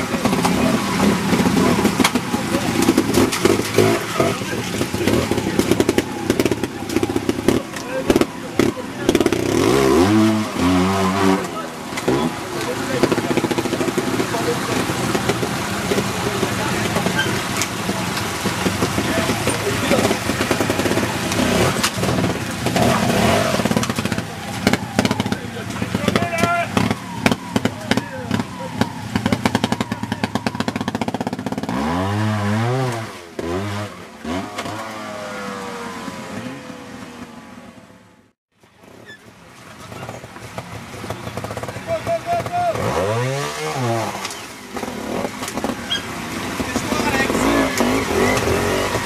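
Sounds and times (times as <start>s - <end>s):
motorcycle engine at low revs: 0.0s - 49.0s.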